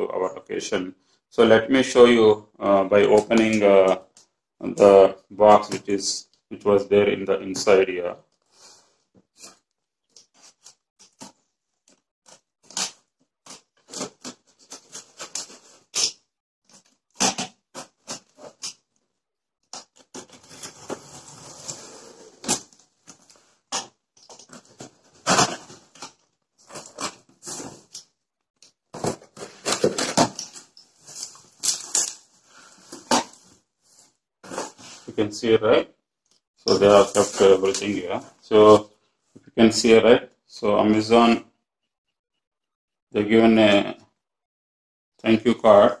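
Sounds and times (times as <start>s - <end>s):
knife slitting packing tape: 12.3s - 16.2s, 25.2s - 26.1s.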